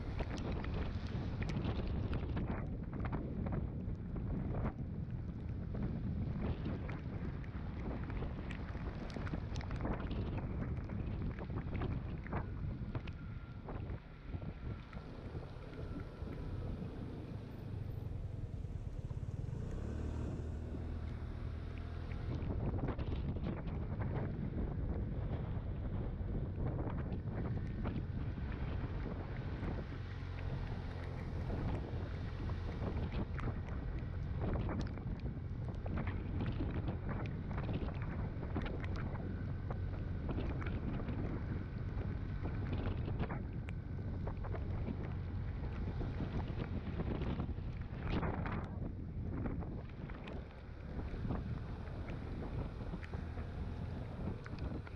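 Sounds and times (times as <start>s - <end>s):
wind buffeting microphone: 0.0s - 54.9s
scooter on wet road: 7.5s - 23.3s, 27.6s - 48.5s, 49.8s - 54.9s.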